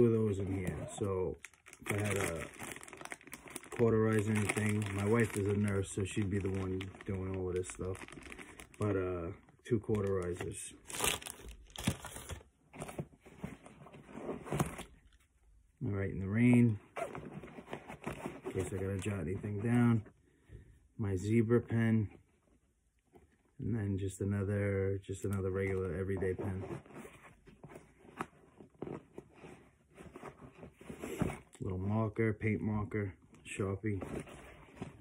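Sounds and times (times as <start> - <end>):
soft rustling in fabric pouch: 0.0 - 15.2.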